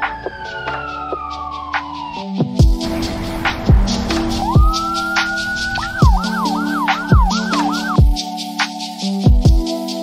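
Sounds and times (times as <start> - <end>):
ambulance siren yelping: 0.0 - 8.2
music with heavy beat: 0.0 - 10.0.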